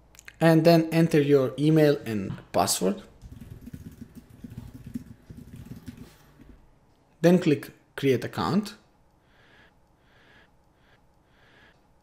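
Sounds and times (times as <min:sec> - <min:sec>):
muffled keyboard typing: 0:03.1 - 0:06.3.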